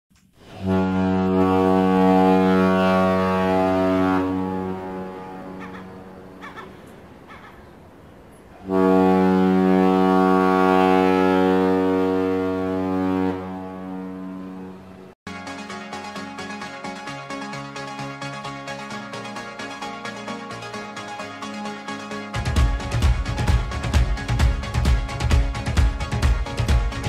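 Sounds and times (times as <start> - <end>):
deep ship's horn blasts: 0.5 - 6.4, 8.6 - 15.2.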